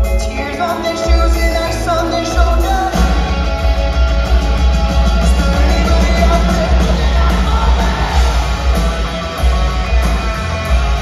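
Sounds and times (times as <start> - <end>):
electric guitars: 0.0 - 11.0
live rock band playing: 0.0 - 11.0.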